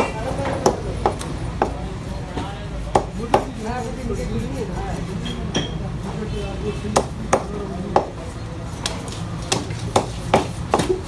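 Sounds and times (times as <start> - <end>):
knife chopping on wooden block: 2.9 - 3.5, 6.9 - 8.2, 8.8 - 11.0.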